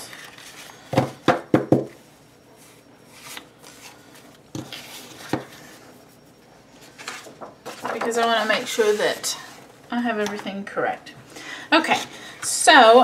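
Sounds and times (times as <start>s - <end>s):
paper sheets knocking on table: 0.9s - 1.9s.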